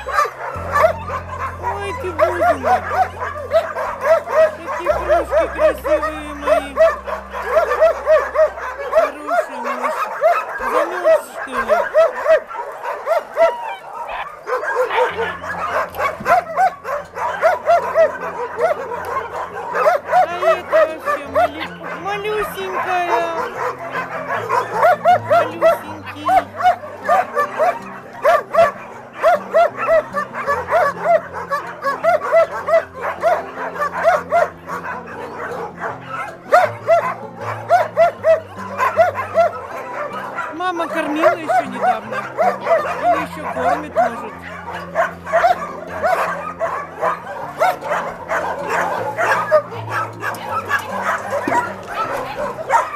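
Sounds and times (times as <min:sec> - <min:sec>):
background music with low notes: 0:00.0 - 0:52.9
puppies whimpering: 0:00.0 - 0:52.9
puppies yapping: 0:00.0 - 0:52.9.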